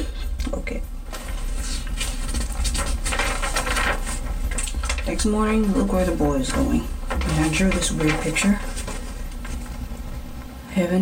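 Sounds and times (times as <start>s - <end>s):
paper pages rustling: 1.1s - 10.5s.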